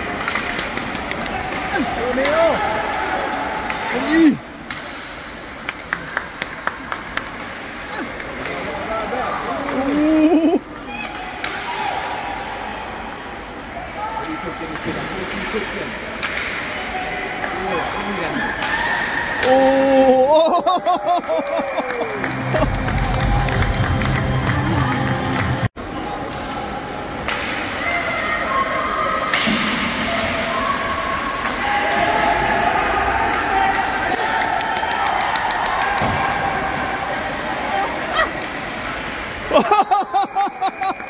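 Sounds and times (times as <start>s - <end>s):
hockey sticks clacking on puck: 0.0s - 3.8s, 4.7s - 10.0s, 14.7s - 16.7s.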